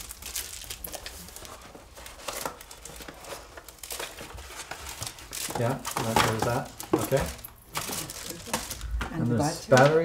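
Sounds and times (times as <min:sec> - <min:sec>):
packaging rustling and crinkling: 0:00.0 - 0:10.0.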